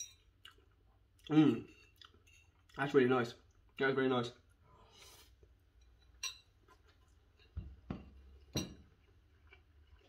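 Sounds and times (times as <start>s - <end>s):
metal fork clinking against bowl: 0.0s - 0.3s, 5.8s - 6.5s.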